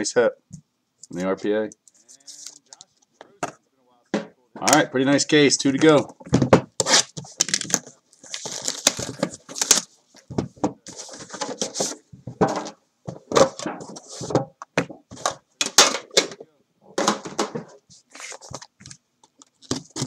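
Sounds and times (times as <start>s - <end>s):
cardboard rustling: 5.7s - 15.4s, 17.2s - 20.0s
cardboard boxes scraping and knocking: 10.3s - 15.4s.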